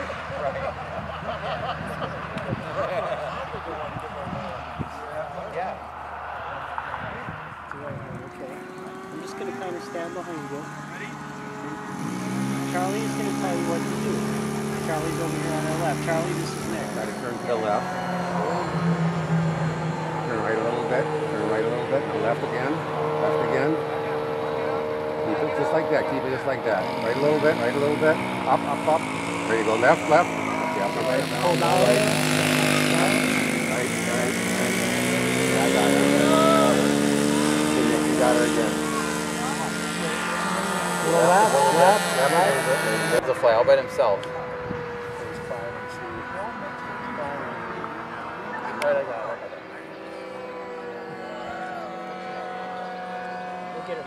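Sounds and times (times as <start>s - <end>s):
model airplane engine running: 7.4s - 54.0s.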